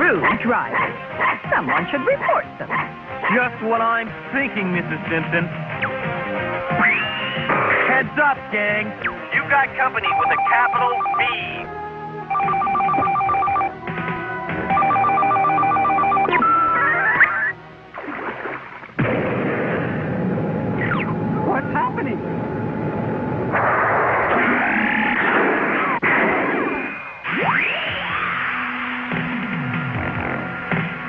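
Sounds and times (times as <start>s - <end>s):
cartoon music: 9.8s - 11.7s, 12.3s - 17.6s
electronic alert warbling: 12.3s - 13.7s.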